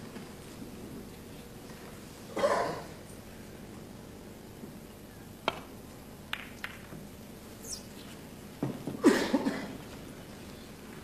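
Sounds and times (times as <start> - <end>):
steady hiss: 0.0 - 11.0
snooker balls clicking: 5.4 - 7.1.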